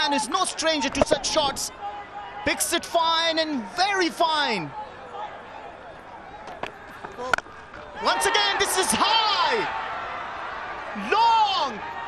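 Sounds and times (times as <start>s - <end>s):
voices shouting: 4.4s - 12.0s.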